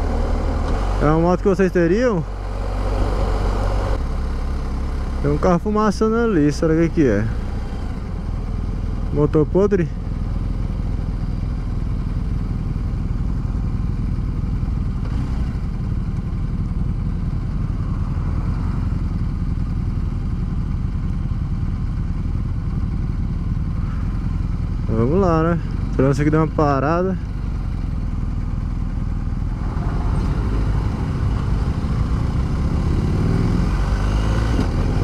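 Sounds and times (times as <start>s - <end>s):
motorcycle engine rumble: 0.0s - 35.0s.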